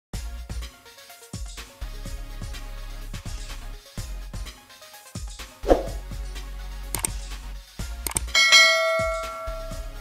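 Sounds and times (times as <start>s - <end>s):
quick clicks: 7.0s - 7.2s, 8.1s - 8.3s
bright bell chime: 8.4s - 10.0s.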